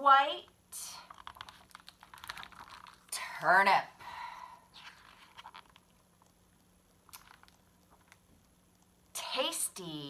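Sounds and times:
book pages turning: 1.1 - 3.1, 4.7 - 6.3.

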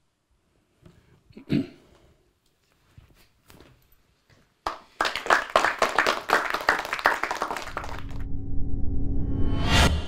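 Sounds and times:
audience applauding: 4.6 - 8.3.

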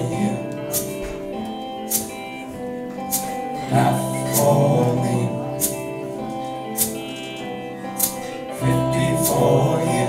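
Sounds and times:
live band playing folk-rock: 0.0 - 8.5.

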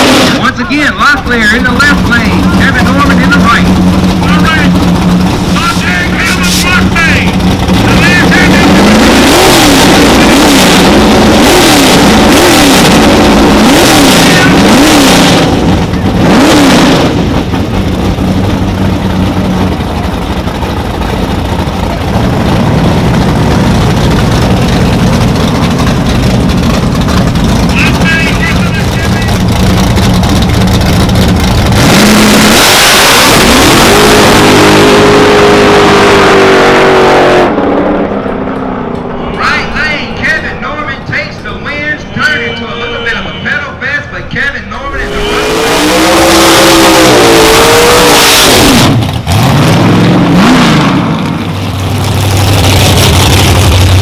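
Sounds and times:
cars launching at full throttle: 0.0 - 54.0
racing engines revving: 0.0 - 54.0.

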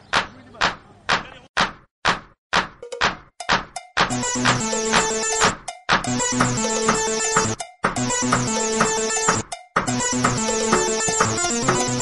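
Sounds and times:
sharp percussion hits: 2.8 - 12.0.

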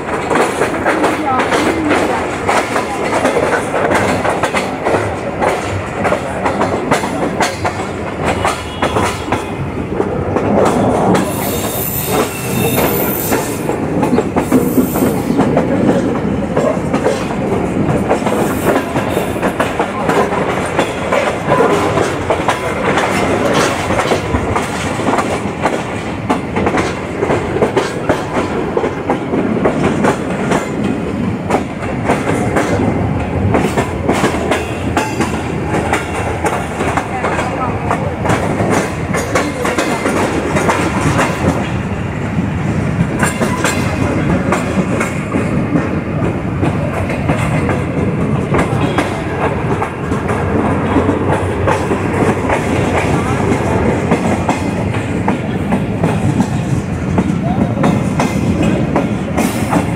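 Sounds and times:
train wheels clickety-clack: 0.0 - 59.9.

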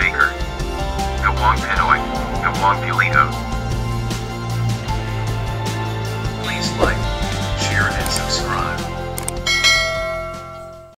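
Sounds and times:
bell ding: 9.5 - 11.0.

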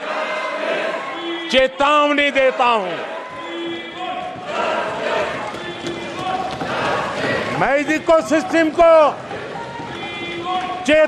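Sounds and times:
people shouting slogans: 0.0 - 11.0
man giving speech: 1.2 - 4.7, 7.5 - 9.4, 10.0 - 11.0.

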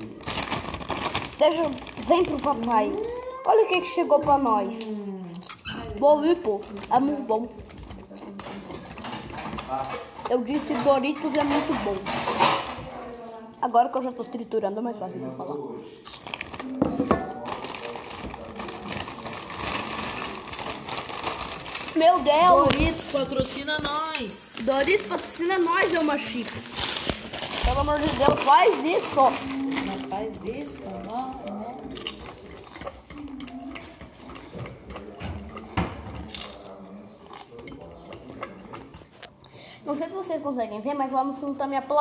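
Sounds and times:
chips being chewed: 16.0 - 16.8, 17.4 - 23.6, 24.5 - 39.2.

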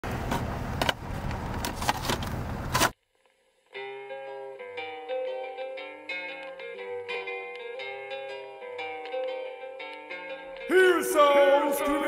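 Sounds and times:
car interior rumble: 0.0 - 2.9
plucked-string music: 3.7 - 12.0.

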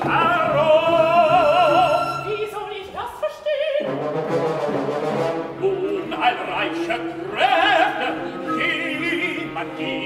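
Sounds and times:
opera orchestra playing: 0.0 - 10.0.

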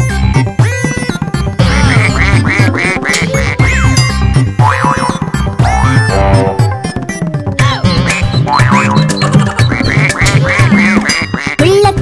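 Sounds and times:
bouncy children's song music: 0.0 - 12.0.

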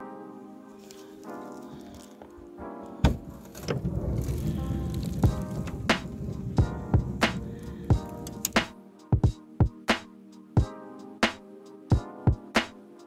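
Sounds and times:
background music: 0.0 - 13.0
footsteps crunching on snow: 0.8 - 2.4.

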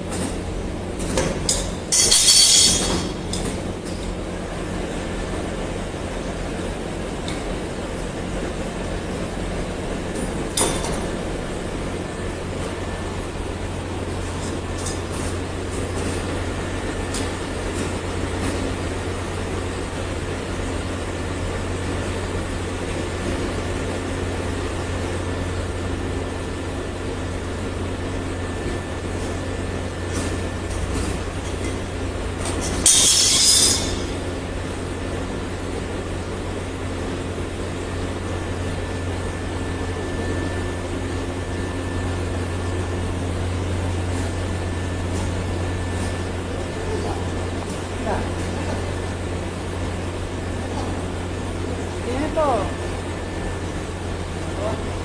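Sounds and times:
machinery humming: 0.0 - 55.0.

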